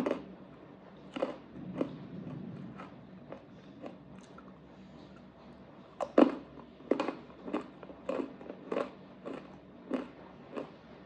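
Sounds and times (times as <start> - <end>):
pretzel being chewed: 0.0 - 11.0.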